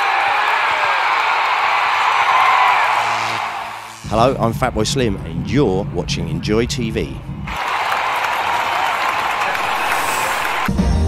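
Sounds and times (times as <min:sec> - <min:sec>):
crowd applause: 0:00.0 - 0:04.0, 0:07.5 - 0:11.0.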